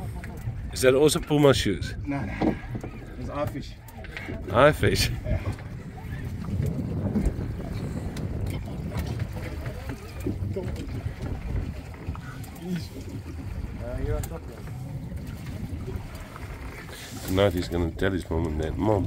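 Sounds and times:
boat noise: 0:00.0 - 0:19.0
wind on microphone: 0:00.0 - 0:19.0.

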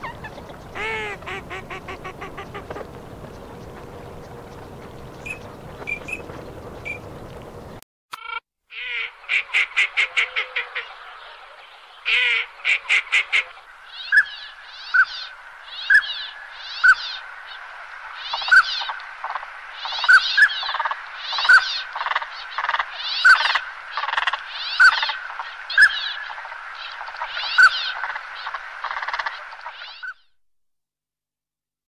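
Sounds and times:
raspy duck calls: 0:00.0 - 0:07.1.

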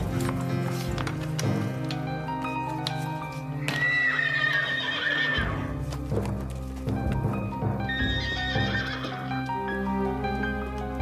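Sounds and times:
background music with sustained tones: 0:00.0 - 0:11.0
horse whinnying: 0:03.6 - 0:05.8, 0:07.8 - 0:09.8.

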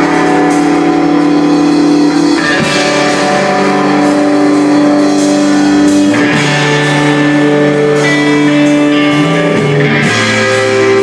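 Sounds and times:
electric guitars sustained chord: 0:00.0 - 0:11.0
rock band playing live: 0:00.0 - 0:11.0.

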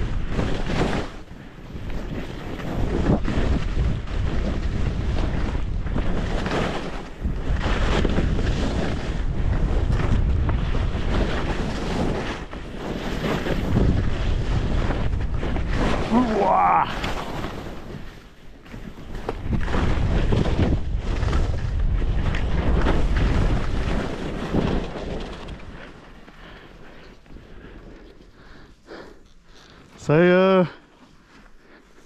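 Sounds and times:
wind rushing over microphone: 0:00.0 - 0:18.1, 0:19.1 - 0:26.0
skis hissing through powder snow: 0:10.8 - 0:21.6.

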